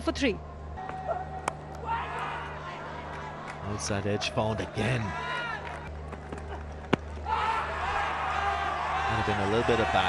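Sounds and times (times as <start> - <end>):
stadium hum: 0.0 - 10.0.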